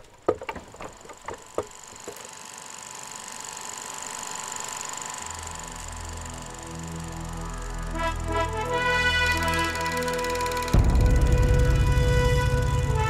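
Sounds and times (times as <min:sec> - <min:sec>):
wooden spinning wheel whirring: 0:00.0 - 0:13.0
low background music: 0:06.2 - 0:13.0.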